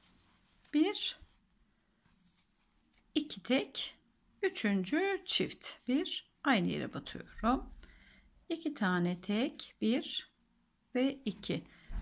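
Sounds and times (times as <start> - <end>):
yarn rustling through crochet hook: 0.0 - 3.7
person speaking: 3.2 - 7.9, 11.0 - 12.0.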